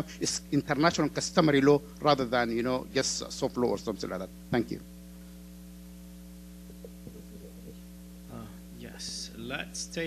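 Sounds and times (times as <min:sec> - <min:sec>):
faint electrical hum: 0:00.0 - 0:10.0.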